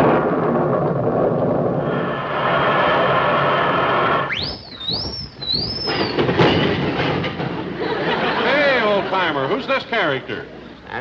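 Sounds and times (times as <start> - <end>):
high warbling whistle: 1.8 - 6.2.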